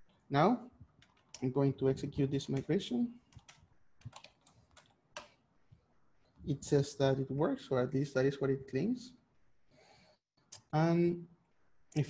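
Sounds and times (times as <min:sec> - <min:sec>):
faint computer keyboard keystrokes: 0:00.9 - 0:01.4, 0:03.3 - 0:05.4.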